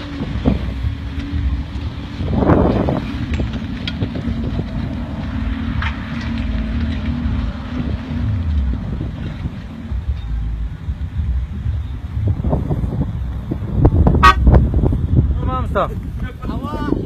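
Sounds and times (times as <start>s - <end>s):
off-road vehicle engine under load: 0.0s - 17.0s
wind on microphone: 0.0s - 17.0s.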